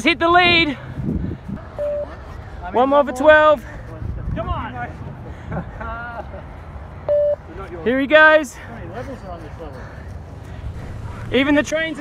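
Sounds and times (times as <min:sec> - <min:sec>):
short electronic beep: 0:01.8 - 0:02.1, 0:07.1 - 0:07.4.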